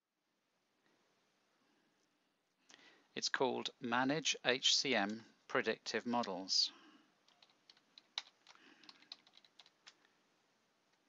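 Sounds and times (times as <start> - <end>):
faint keyboard typing: 7.2 - 10.2.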